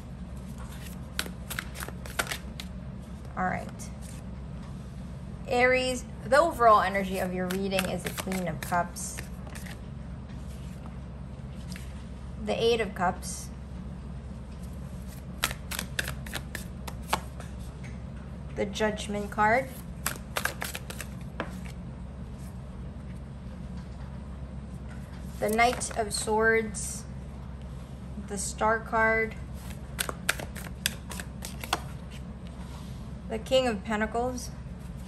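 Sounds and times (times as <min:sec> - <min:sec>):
low background hum: 0:00.0 - 0:35.0
cards clicking and snapping: 0:00.7 - 0:02.7, 0:07.4 - 0:09.8, 0:15.4 - 0:17.3, 0:20.0 - 0:21.7, 0:29.6 - 0:31.9.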